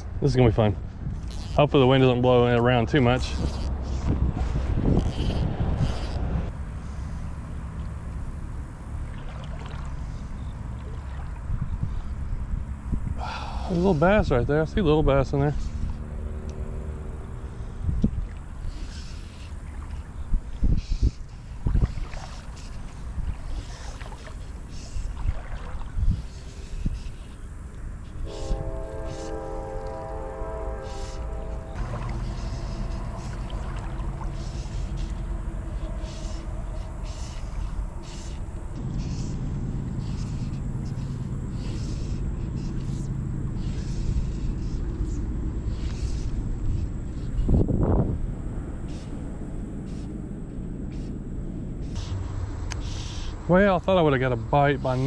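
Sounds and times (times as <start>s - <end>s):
wind gusts: 0.0s - 54.9s
road traffic: 0.0s - 55.0s
held horn tone: 28.0s - 41.3s.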